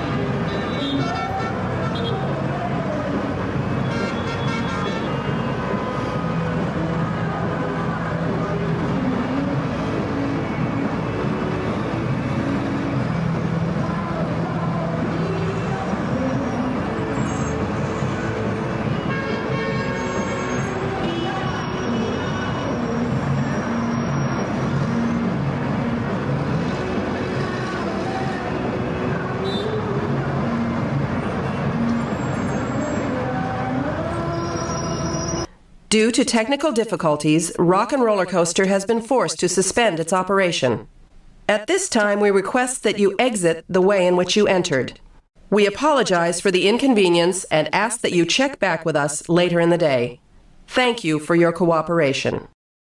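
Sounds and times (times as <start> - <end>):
engine tones shifting pitch: 0.0 - 35.5
road traffic noise: 0.0 - 35.6.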